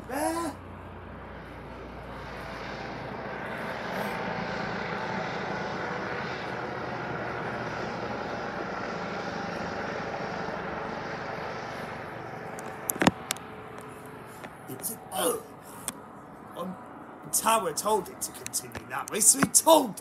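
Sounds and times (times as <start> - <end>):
helicopter flying overhead: 0.0 - 20.0.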